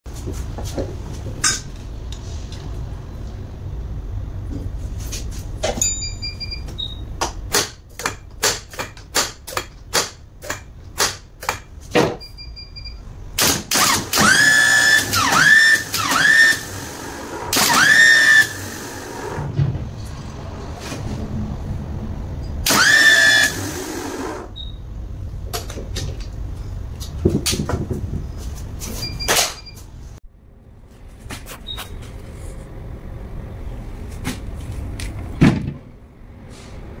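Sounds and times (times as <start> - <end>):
starter motor whining: 13.8 - 19.5, 22.6 - 24.5
starter motor clicking: 22.7 - 24.5.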